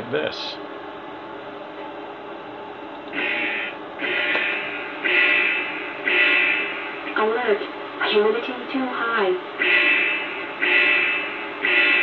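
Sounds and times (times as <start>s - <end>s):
electronic alarm tones: 3.2s - 6.8s, 9.6s - 12.0s.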